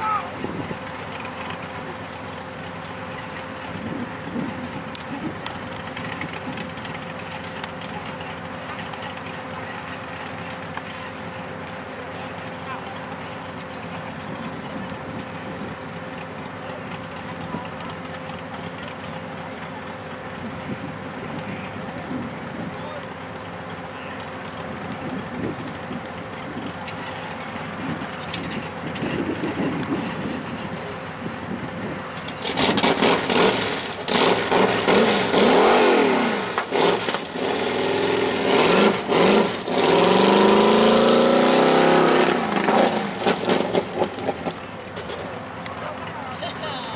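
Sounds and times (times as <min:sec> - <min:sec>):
race vehicle engine accelerating: 0:00.0 - 0:46.9.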